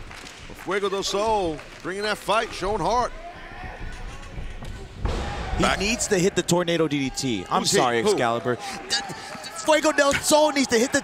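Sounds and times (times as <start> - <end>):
faint arena background: 0.0 - 11.0.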